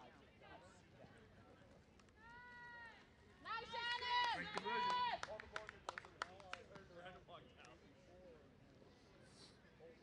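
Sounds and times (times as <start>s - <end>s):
hands clapping: 4.5s - 6.8s.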